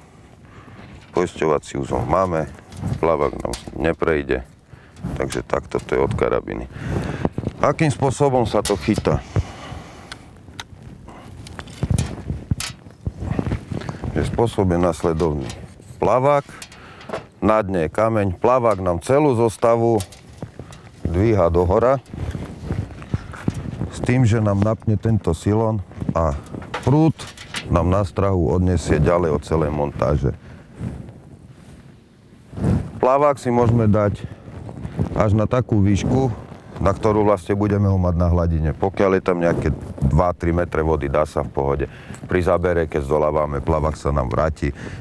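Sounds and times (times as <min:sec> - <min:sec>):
faint outdoor background noise: 0:00.0 - 0:45.0
wind rumbling on microphone: 0:00.0 - 0:45.0
man talking: 0:01.1 - 0:09.5, 0:13.4 - 0:16.7, 0:17.4 - 0:20.2, 0:21.0 - 0:22.1, 0:23.9 - 0:30.4, 0:33.0 - 0:34.3, 0:35.2 - 0:44.8.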